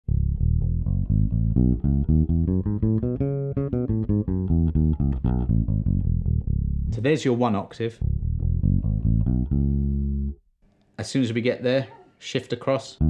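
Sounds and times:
electric bass scale run: 0.1s - 7.2s, 7.9s - 10.4s.

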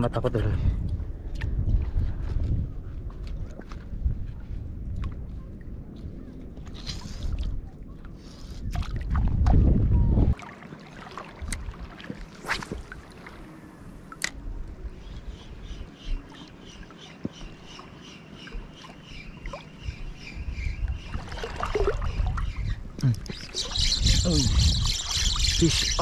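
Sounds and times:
sea water sloshing: 6.4s - 14.4s, 21.0s - 22.6s.

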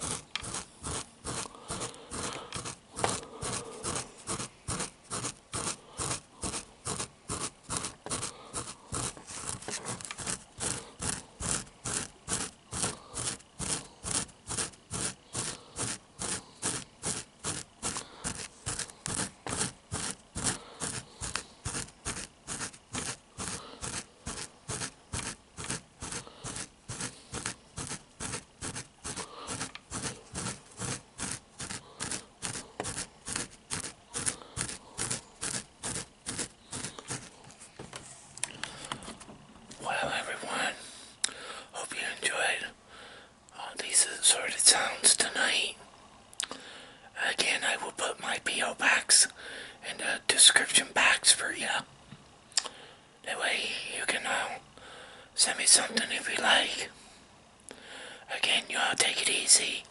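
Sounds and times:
hand rubbing against microphone: 0.0s - 38.3s.

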